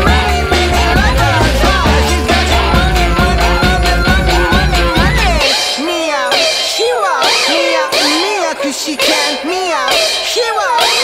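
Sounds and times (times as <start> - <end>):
song backing track: 0.0 - 11.0.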